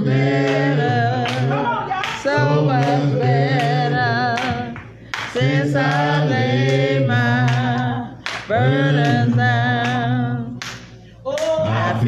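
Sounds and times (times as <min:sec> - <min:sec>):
person singing with vibrato: 0:00.0 - 0:10.6.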